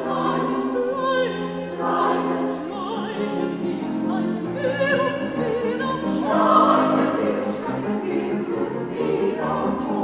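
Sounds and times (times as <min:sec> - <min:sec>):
mezzo-soprano soloist singing: 0:00.0 - 0:10.0
women's choir singing: 0:00.0 - 0:10.0.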